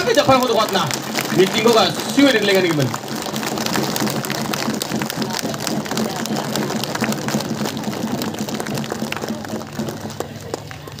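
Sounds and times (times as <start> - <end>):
crowd applauding: 0.0 - 11.0.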